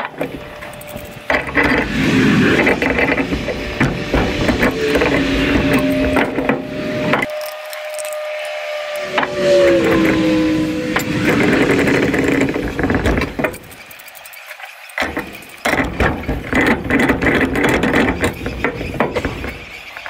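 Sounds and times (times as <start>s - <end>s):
steady hum: 0.0s - 14.2s.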